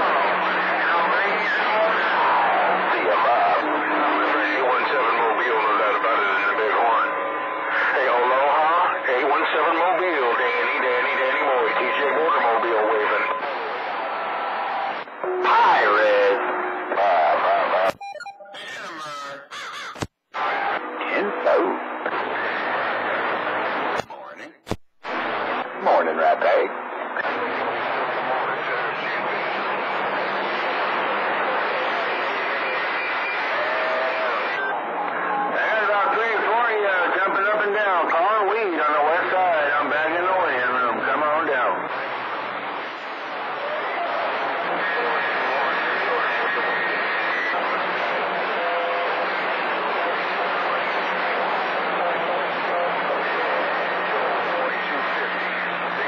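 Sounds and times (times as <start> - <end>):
loud radio static: 0.0 - 56.0
warbling radio tones: 0.8 - 21.8
faint garbled distant voices: 41.8 - 56.0.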